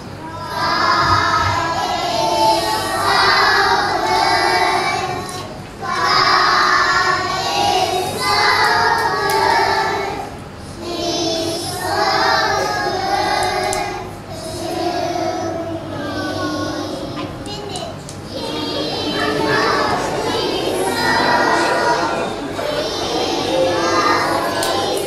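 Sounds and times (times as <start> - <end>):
children's choir singing: 0.0 - 17.4, 18.2 - 25.0.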